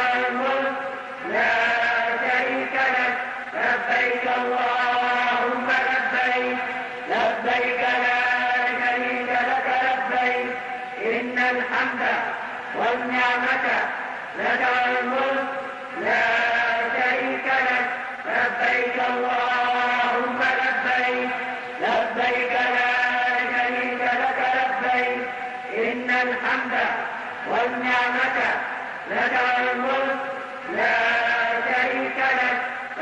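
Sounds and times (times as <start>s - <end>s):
man chanting: 0.0s - 33.0s.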